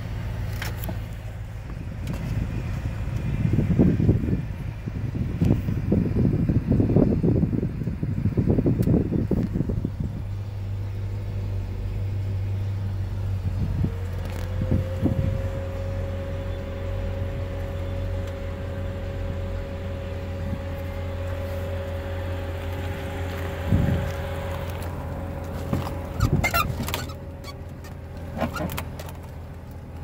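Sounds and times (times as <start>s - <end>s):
car engine hum inside cabin: 0.0s - 30.0s.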